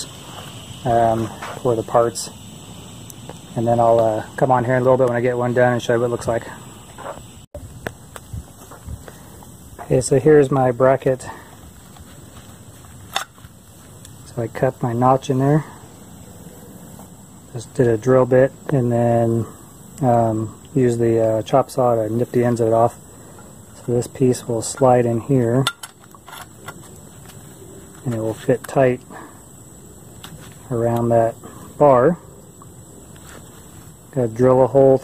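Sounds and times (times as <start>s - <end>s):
faint background hiss: 0.0s - 35.0s
low steady background noise: 0.0s - 35.0s.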